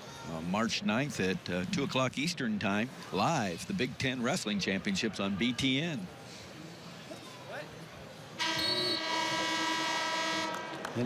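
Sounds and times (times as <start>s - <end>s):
scoreboard horn long tone: 8.4s - 11.0s.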